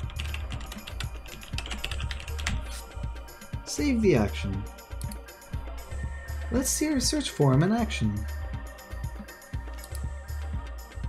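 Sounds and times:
keyboard typing: 0:00.0 - 0:02.8, 0:04.9 - 0:05.3, 0:09.7 - 0:10.1
background music with bass: 0:00.0 - 0:11.0.

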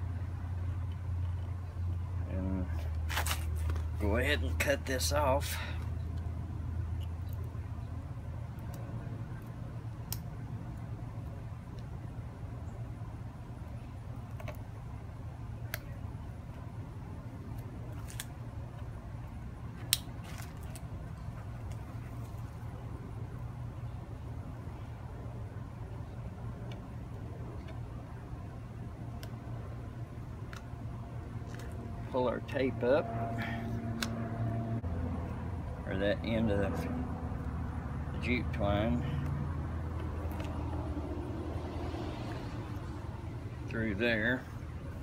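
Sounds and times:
road-paving machinery rumble: 0:00.0 - 0:45.0.

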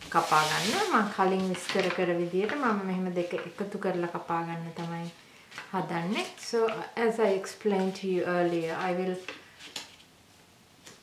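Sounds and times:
woman speaking: 0:00.0 - 0:09.3.

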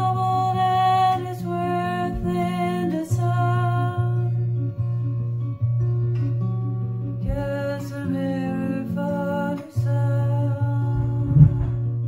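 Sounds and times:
fingerpicked acoustic guitar: 0:00.0 - 0:12.0
low thump: 0:11.0 - 0:11.9.

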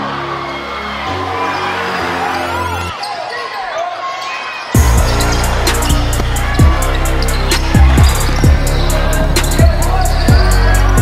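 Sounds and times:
crowd noise: 0:00.0 - 0:11.0
sneakers squeaking: 0:01.2 - 0:11.0
background music: 0:04.8 - 0:11.0
basketball bouncing: 0:04.8 - 0:11.0.

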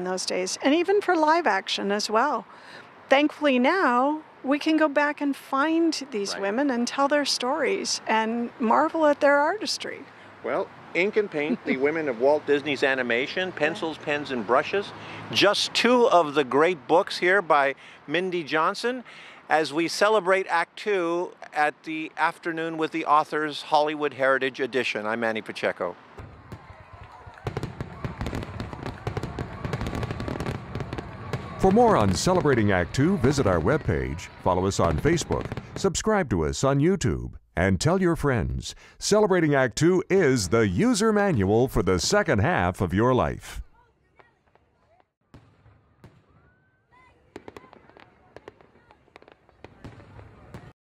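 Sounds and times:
fireworks bangs and crackles: 0:26.1 - 0:36.1, 0:44.2 - 0:50.7.

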